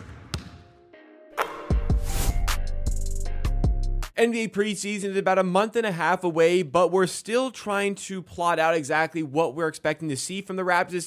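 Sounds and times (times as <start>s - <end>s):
basketball bouncing: 0.0s - 0.7s
music: 0.0s - 4.2s.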